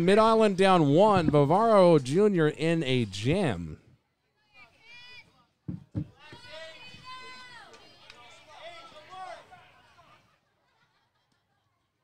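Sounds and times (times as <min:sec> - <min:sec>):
children shouting and cheering: 0:06.2 - 0:10.1.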